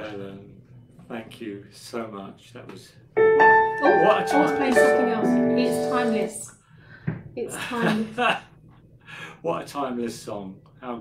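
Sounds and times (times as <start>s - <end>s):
piano chord: 3.2s - 6.5s
people talking: 3.8s - 6.5s, 7.4s - 8.3s.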